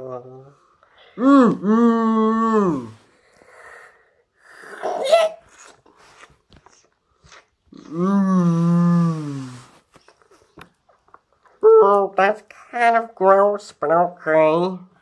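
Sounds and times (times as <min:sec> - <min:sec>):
child making monster noises: 0:04.6 - 0:05.6.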